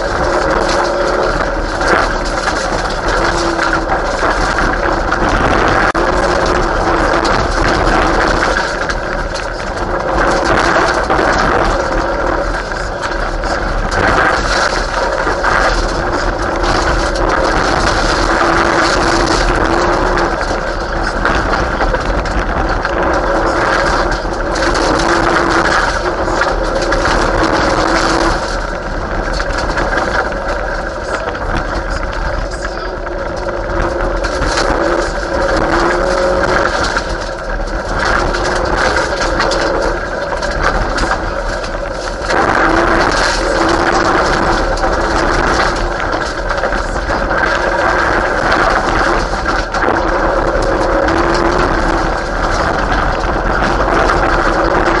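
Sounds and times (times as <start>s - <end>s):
rally car engine revving: 0.0s - 55.0s
tyre and gravel noise: 0.0s - 55.0s.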